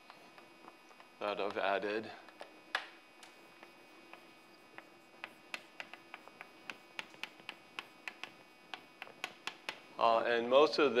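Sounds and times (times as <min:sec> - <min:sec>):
chalk tapping on blackboard: 0:03.3 - 0:09.9.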